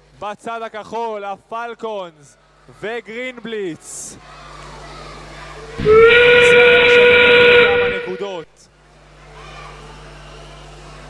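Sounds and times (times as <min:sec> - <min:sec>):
long steam whistle: 0:05.8 - 0:08.4.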